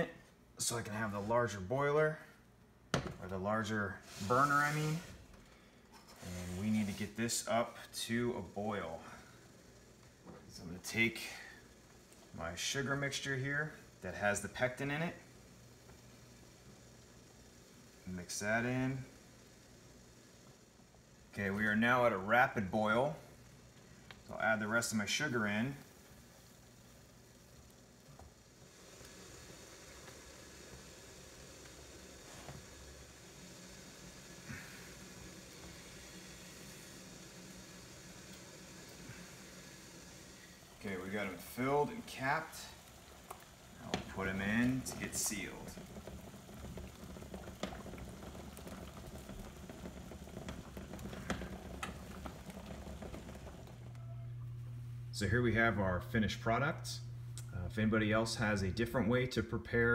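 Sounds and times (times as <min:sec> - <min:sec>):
jam bubbling at a boil: 0:02.8 - 0:59.9.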